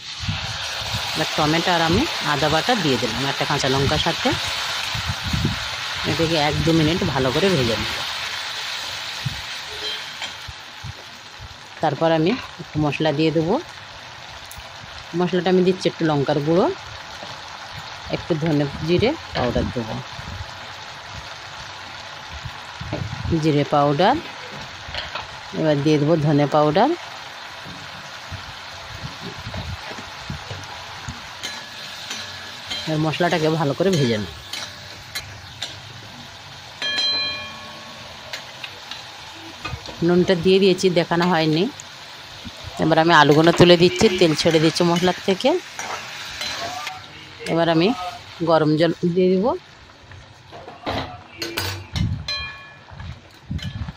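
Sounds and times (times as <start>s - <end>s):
paste sizzling in hot oil: 0.0s - 50.5s
ringing clink: 36.8s - 38.2s.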